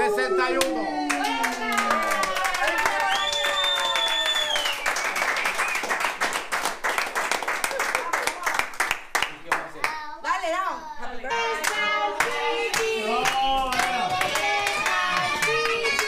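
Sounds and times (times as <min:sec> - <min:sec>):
people clapping a steady beat: 0:00.6 - 0:10.0, 0:11.4 - 0:16.0.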